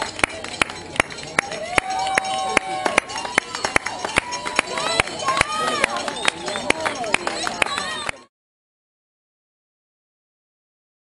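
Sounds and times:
rapid sharp claps: 0.0s - 8.3s
spectators cheering: 1.2s - 8.3s.

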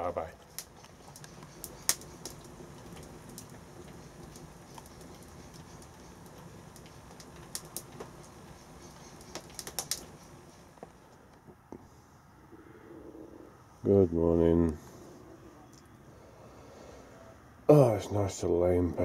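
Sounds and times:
wood fire crackling and popping: 0.0s - 11.6s.

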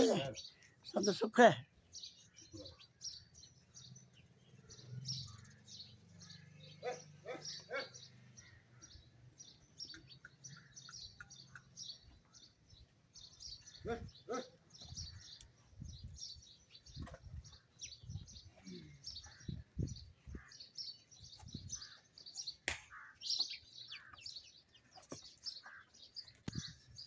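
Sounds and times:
small birds chirping: 0.0s - 27.0s.

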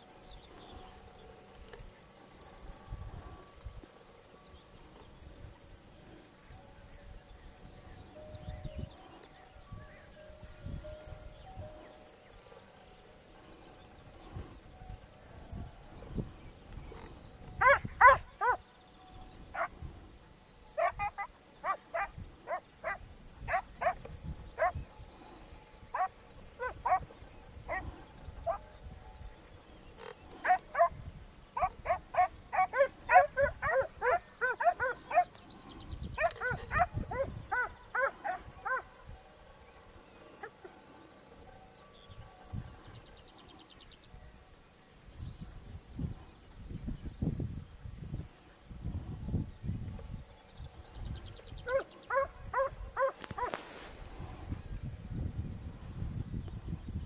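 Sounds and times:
insects droning: 0.0s - 57.0s.

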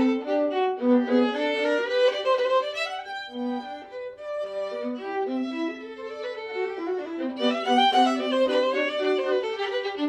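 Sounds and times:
violin and viola playing: 0.0s - 10.0s.

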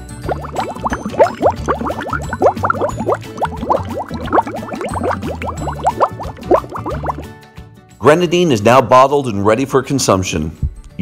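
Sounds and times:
syrup gurgling into bottle: 0.0s - 7.3s.

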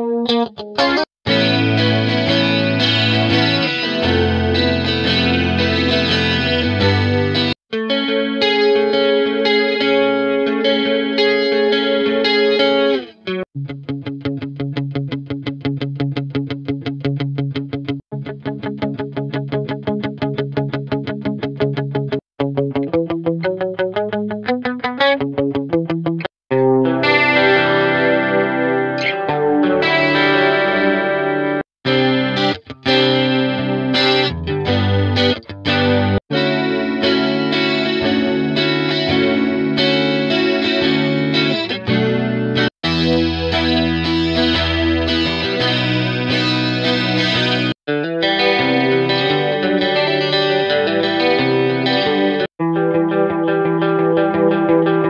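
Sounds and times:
electric guitar chords: 0.0s - 55.0s
picked guitar notes: 0.0s - 55.0s.

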